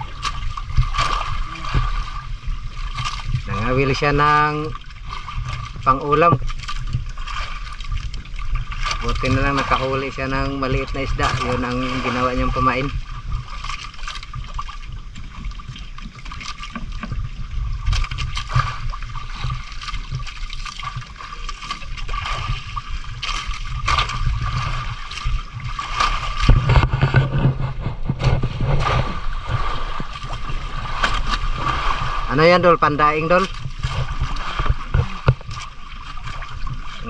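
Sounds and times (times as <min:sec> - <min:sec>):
water slapping against boat hull: 0:00.0 - 0:37.0
wind rumbling on microphone: 0:00.0 - 0:37.0.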